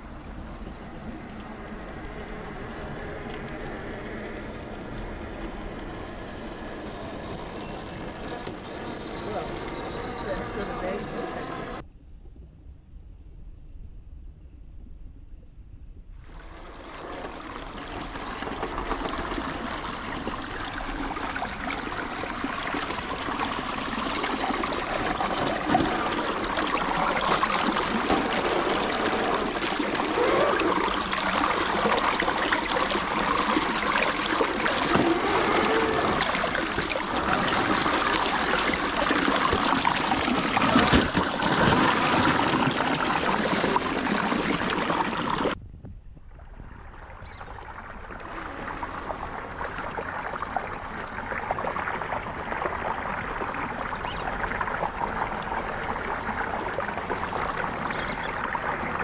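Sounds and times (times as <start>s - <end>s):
water rushing over rocks: 16.2s - 45.6s.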